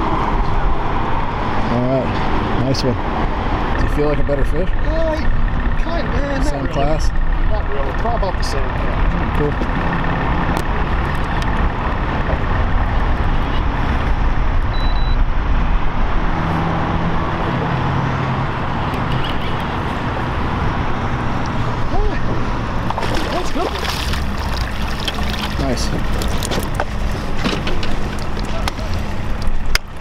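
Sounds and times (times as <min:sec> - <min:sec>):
fish splashing at surface: 0:22.9 - 0:27.3.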